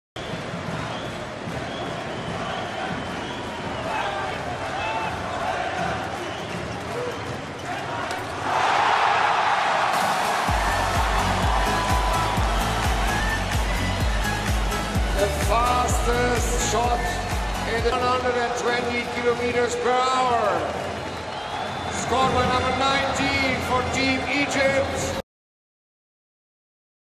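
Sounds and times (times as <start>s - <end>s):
crowd noise: 0.2s - 25.2s
music with heavy beat: 10.0s - 17.9s
voice talking: 15.2s - 20.7s.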